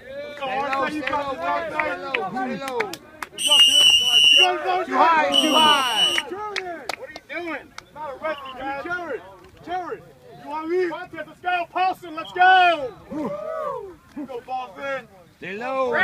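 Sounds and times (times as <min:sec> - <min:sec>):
players shouting and cheering: 0:00.0 - 0:15.1
shrill whistle blasts: 0:03.4 - 0:04.6, 0:05.3 - 0:06.2.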